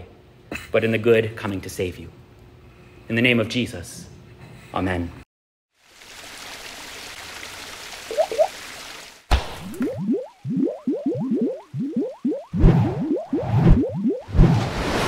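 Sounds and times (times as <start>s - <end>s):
short rising bloops: 8.1s - 8.5s, 9.6s - 14.8s.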